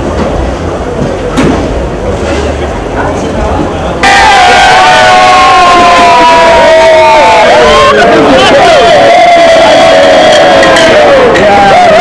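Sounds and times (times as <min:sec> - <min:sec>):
crowd cheering and shouting: 0:04.0 - 0:12.0.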